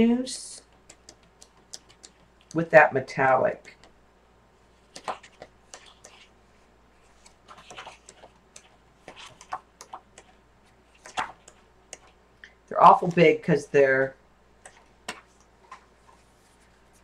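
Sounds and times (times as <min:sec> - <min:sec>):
paper pages flipping: 0:04.8 - 0:06.3, 0:07.0 - 0:10.0, 0:10.9 - 0:12.1.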